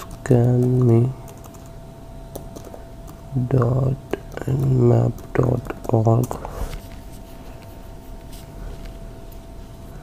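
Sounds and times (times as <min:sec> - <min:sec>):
computer keyboard keystrokes: 0:00.0 - 0:01.7, 0:02.3 - 0:03.2.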